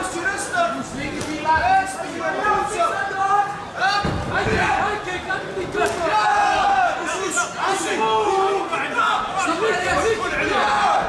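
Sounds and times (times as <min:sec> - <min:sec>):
crowd shouting and cheering: 0:00.0 - 0:11.0.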